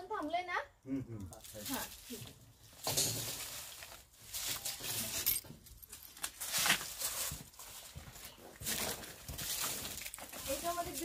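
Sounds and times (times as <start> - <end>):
footsteps in dry straw: 1.5 - 11.0.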